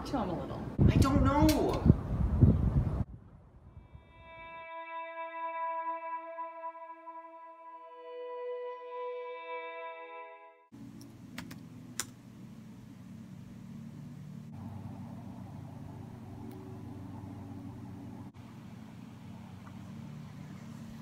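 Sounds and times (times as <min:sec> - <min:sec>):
low room hum: 0:10.8 - 0:21.0
sharp clicks: 0:11.0 - 0:12.2.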